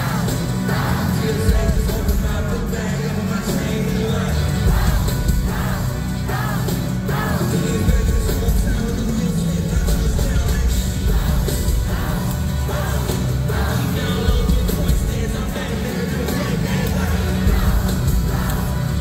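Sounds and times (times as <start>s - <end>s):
live hip-hop music: 0.0s - 19.0s.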